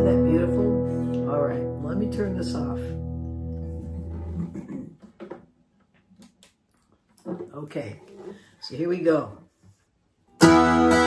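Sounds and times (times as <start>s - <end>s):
person speaking: 0.0s - 3.0s
acoustic guitar chord ringing: 0.0s - 4.4s, 10.4s - 11.0s.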